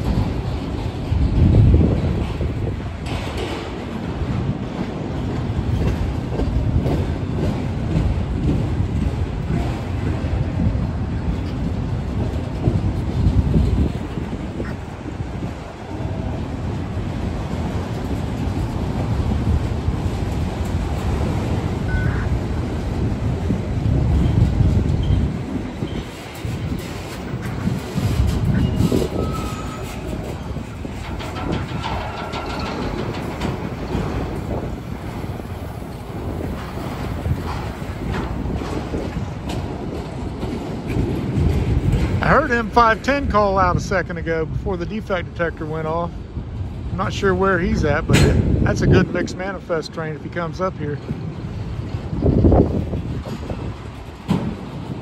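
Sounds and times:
freight train rolling past: 0.0s - 55.0s
wheels clacking over rail joints: 0.0s - 55.0s.

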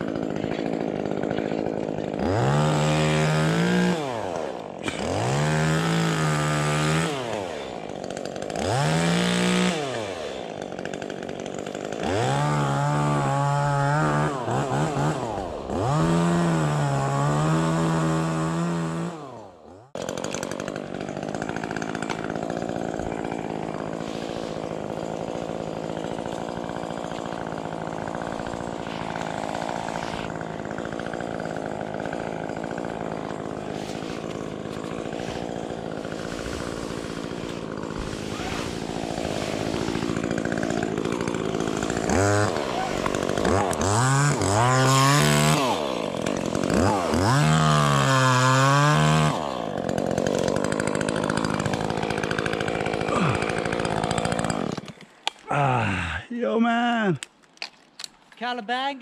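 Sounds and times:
chainsaw revving: 0.0s - 56.2s.

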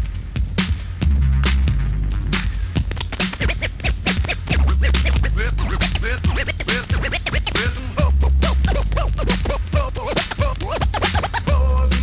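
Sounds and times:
hip hop beat with deep bass: 0.0s - 12.0s
record scratching: 1.4s - 12.0s.

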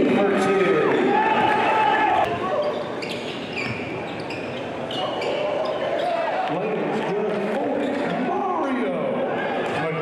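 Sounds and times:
sneaker squeaks: 2.2s - 6.3s.

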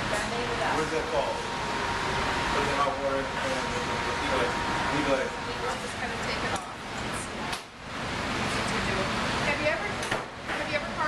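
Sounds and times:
indistinct talking: 0.0s - 11.0s.

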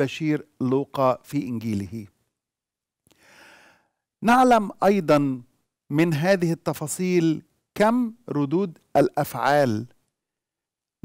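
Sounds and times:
man speaking: 0.0s - 2.1s, 4.2s - 10.0s
man breathing faintly: 3.1s - 4.1s.

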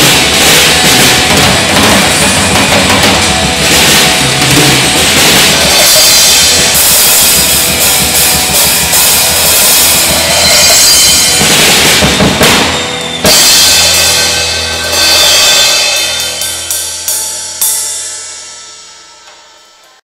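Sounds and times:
acoustic drum kit: 0.0s - 18.6s
cymbal crash: 0.0s - 20.0s
recorded song: 0.0s - 20.0s.

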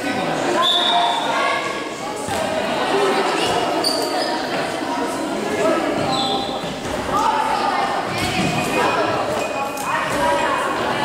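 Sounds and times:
shoe squeaks on wooden floor: 3.8s - 4.5s, 6.0s - 6.6s.

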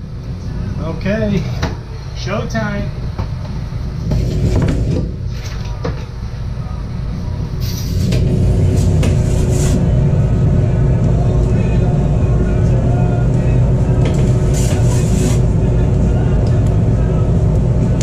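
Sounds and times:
faint steady hum: 0.0s - 18.0s
low mechanical rumble: 0.0s - 18.0s.

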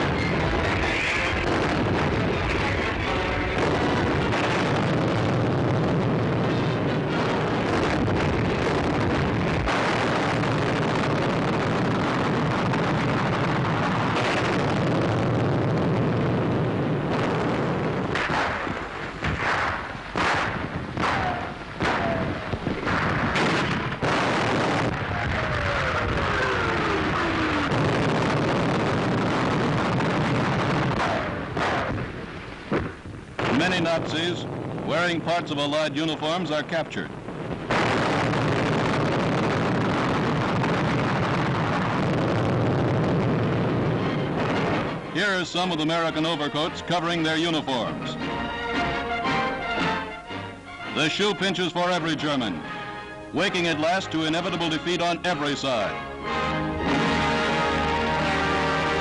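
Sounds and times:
sharp gunshots: 0.0s - 36.4s, 37.3s - 48.1s
artillery booms and rumbling: 0.0s - 50.3s.

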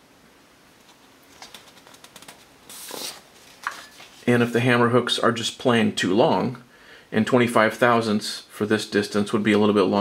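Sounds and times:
paper rustling: 0.9s - 4.3s
paper ticks: 1.3s - 2.5s.

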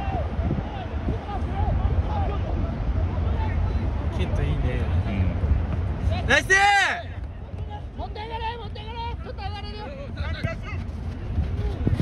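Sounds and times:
wind rumble on microphone: 0.0s - 6.3s, 7.1s - 12.0s.

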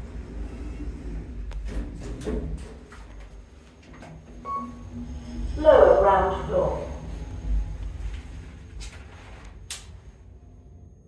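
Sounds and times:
lift car humming: 0.0s - 11.0s
short steady beep: 4.4s - 5.0s.

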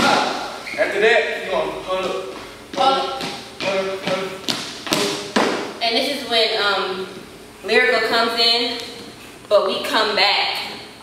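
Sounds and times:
sneakers tapping on floor: 2.0s - 5.8s.

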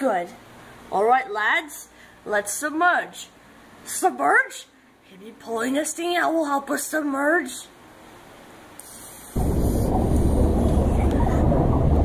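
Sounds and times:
loud low rumbling: 9.4s - 12.0s.

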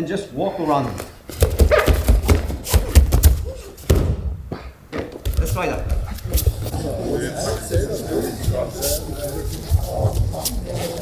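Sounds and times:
bare feet thudding on mats: 1.0s - 6.6s
body thuds on mats: 1.3s - 4.4s
person grunting: 6.3s - 11.0s.

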